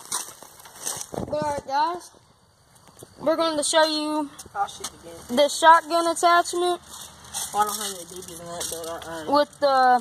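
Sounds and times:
person talking: 0:07.5 - 0:10.0.

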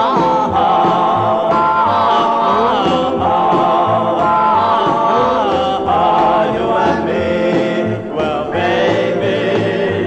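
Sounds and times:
pulsing bass line: 0:00.0 - 0:10.0
vocal group singing in harmony: 0:00.0 - 0:10.0.

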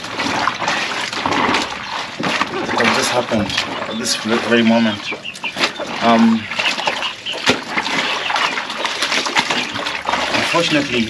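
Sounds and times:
clothes scrubbed by hand: 0:00.0 - 0:11.0
water sloshing and splashing: 0:00.0 - 0:11.0.

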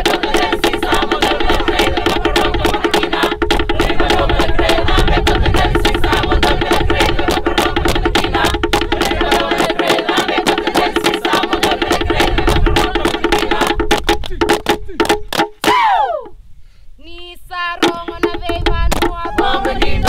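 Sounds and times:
wooden slit drums beating: 0:00.0 - 0:16.4, 0:17.8 - 0:20.0.

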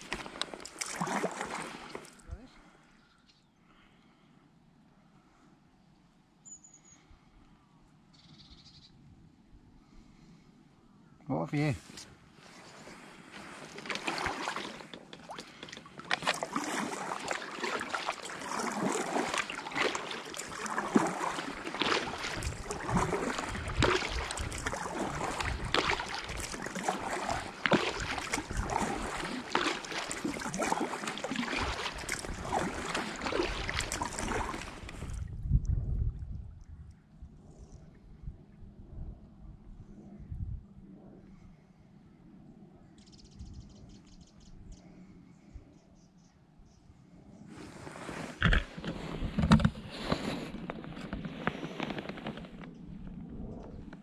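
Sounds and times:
kayak paddle strokes splashing: 0:00.0 - 0:02.4, 0:11.9 - 0:35.3, 0:47.6 - 0:54.0
faint water sounds: 0:00.0 - 0:05.9, 0:09.4 - 0:46.1, 0:46.9 - 0:54.0
knocks and rustles: 0:48.4 - 0:52.7.

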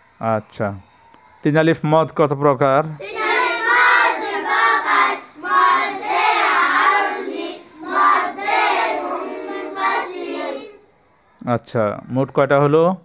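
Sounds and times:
children chanting in chorus: 0:03.0 - 0:11.0.

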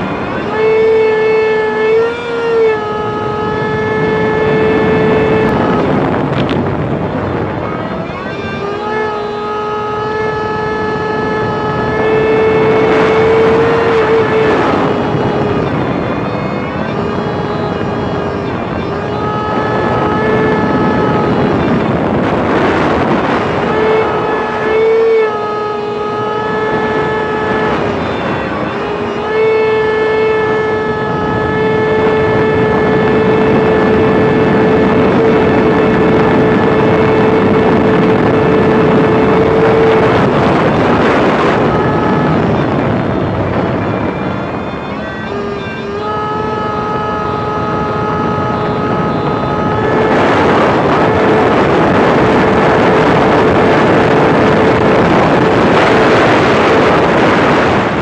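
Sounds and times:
jet ski engine high-pitched drone: 0:00.0 - 0:58.0
rush of wind and spray: 0:00.0 - 0:58.0.

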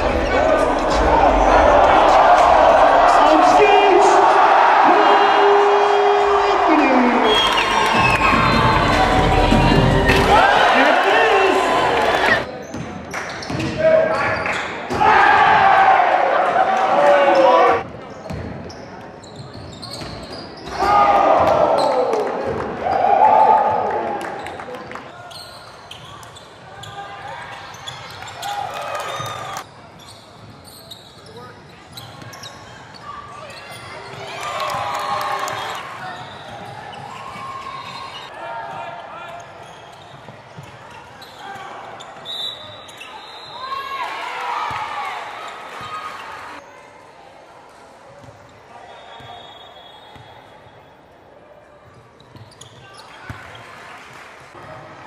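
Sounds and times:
echoing voices and shouts: 0:00.0 - 0:12.5.

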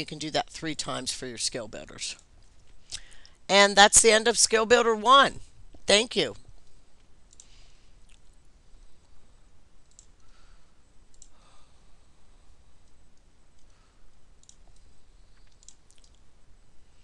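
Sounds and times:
low room hiss: 0:00.0 - 0:17.0
faint computer mouse clicks: 0:07.3 - 0:08.2, 0:09.8 - 0:10.3, 0:11.1 - 0:11.4, 0:14.4 - 0:16.2.

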